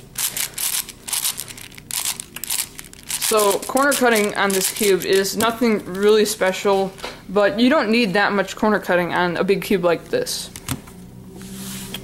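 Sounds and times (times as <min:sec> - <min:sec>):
puzzle cube clicking and scraping: 0:00.2 - 0:05.6.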